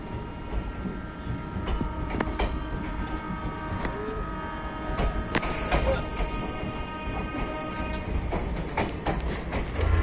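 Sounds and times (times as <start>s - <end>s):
train wheels rumbling on rails: 0.0s - 10.0s
clicks from the track: 1.6s - 3.2s, 8.3s - 10.0s.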